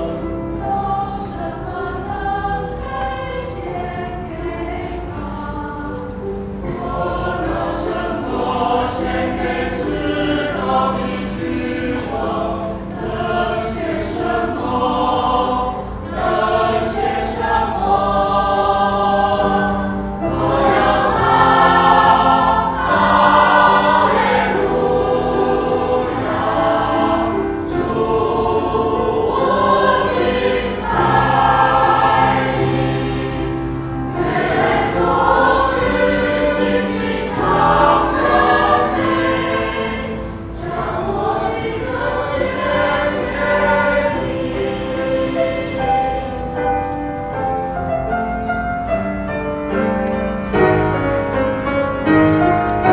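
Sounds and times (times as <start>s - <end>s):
choir singing: 0.0s - 52.9s.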